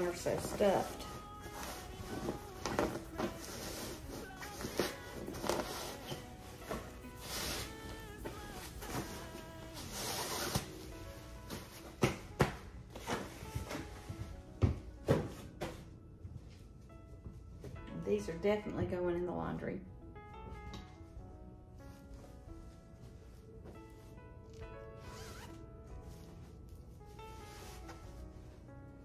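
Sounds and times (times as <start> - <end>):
fabric rustling: 0.0 - 18.0, 20.3 - 29.0
soft background music: 0.0 - 29.0.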